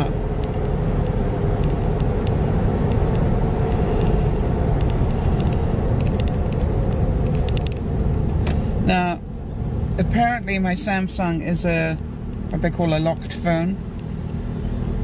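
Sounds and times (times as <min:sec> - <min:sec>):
car road and engine rumble: 0:00.0 - 0:15.0.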